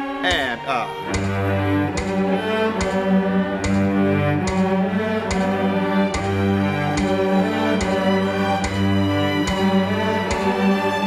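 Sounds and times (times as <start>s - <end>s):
cello bowed slow melody: 0.0s - 11.0s
soft ticking beat: 0.0s - 11.0s.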